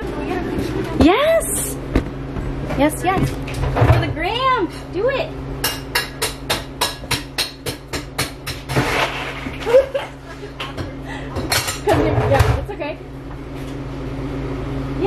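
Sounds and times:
steady machine hum: 0.0 - 15.0.

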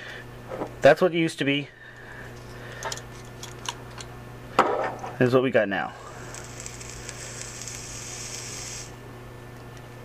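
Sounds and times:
e-liquid sizzling hiss: 6.0 - 9.0.

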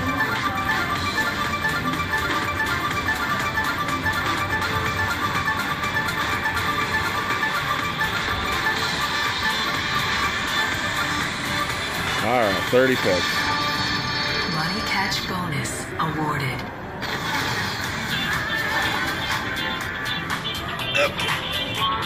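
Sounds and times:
slot machine music and jingles: 0.0 - 14.9.

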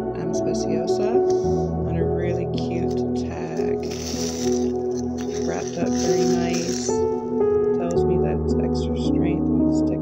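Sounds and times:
soft ambient music: 0.0 - 10.0.

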